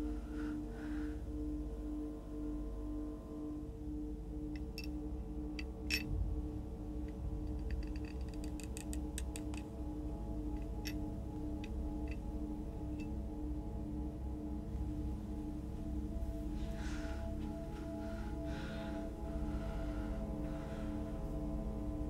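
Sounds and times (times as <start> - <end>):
low droning film score: 0.0 - 22.0.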